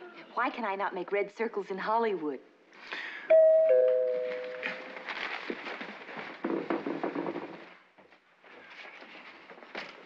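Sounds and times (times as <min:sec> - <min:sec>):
two-tone doorbell chime: 0:03.3 - 0:04.9
crackly clicks and noise: 0:04.4 - 0:10.0.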